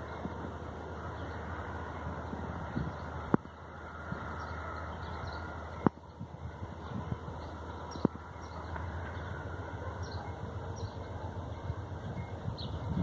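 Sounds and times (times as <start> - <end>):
birds chirping: 0.0 - 13.0
distant locomotive engine rumble: 0.0 - 13.0.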